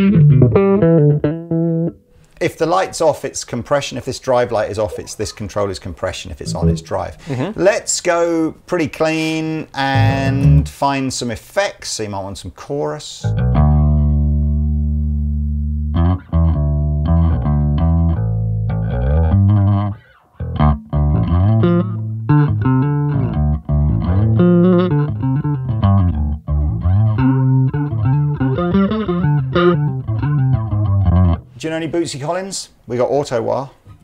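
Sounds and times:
electric bass with chorus effect: 0:00.0 - 0:02.0, 0:06.4 - 0:07.5, 0:09.9 - 0:10.8, 0:13.2 - 0:31.5.

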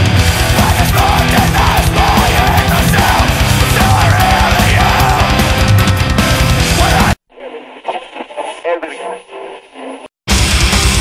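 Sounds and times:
heavy metal music: 0:00.0 - 0:07.2, 0:10.3 - 0:11.0
voice through small speaker: 0:06.8 - 0:10.1.

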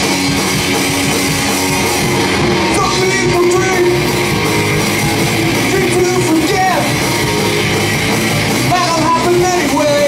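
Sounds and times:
bass guitar: 0:00.0 - 0:10.0
distorted electric guitars: 0:00.0 - 0:10.0
drum kit: 0:00.0 - 0:10.0.

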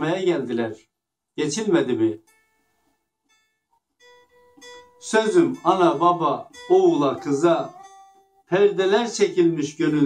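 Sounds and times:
faint plucked string music: 0:01.4 - 0:10.0.

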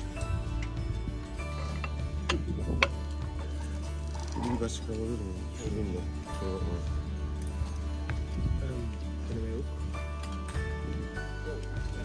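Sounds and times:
background music with bass: 0:00.0 - 0:12.0.

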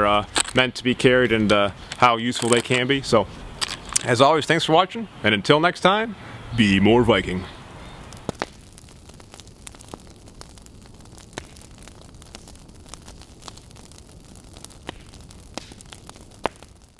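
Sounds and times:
fire crackling: 0:00.0 - 0:16.9.

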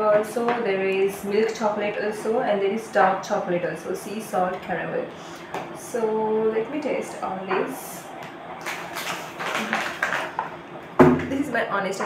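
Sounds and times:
plastic bag crackling: 0:08.6 - 0:10.4.

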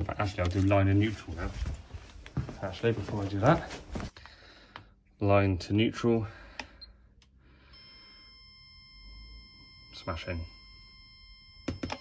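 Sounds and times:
high-pitched tester tone: 0:07.7 - 0:12.0.

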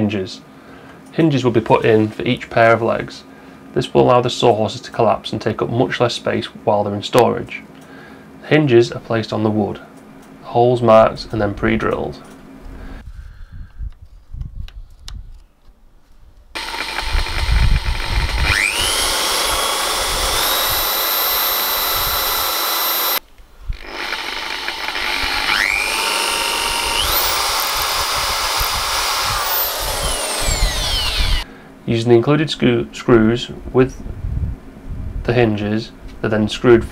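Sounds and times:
electric drill drilling wood: 0:16.6 - 0:31.5.

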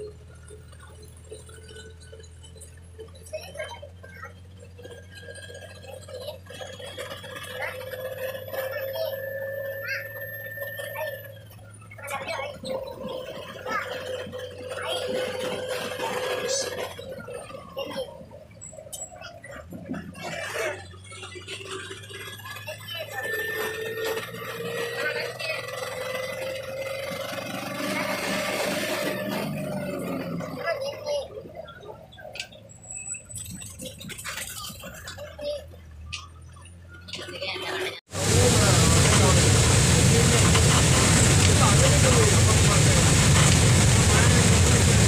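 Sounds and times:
bus engine hum and whine: 0:00.0 - 0:45.0.

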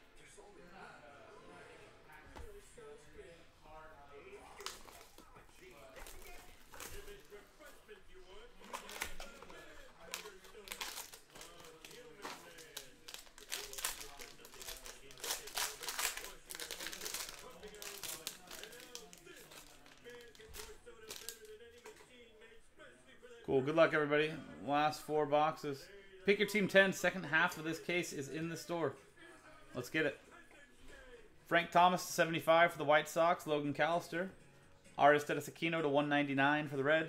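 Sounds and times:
foil wrapper crinkling and tearing: 0:04.6 - 0:07.4, 0:08.6 - 0:21.6.

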